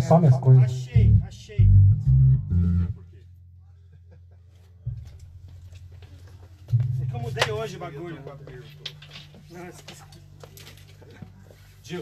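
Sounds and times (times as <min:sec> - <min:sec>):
electric bass notes: 0:00.0 - 0:03.7, 0:04.8 - 0:09.6
amplifier hum: 0:00.9 - 0:03.1, 0:04.8 - 0:10.4.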